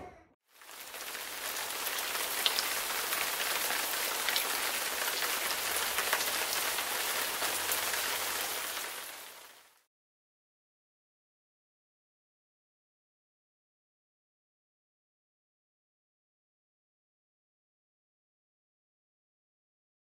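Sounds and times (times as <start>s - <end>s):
steady rain falling: 0.5s - 9.9s.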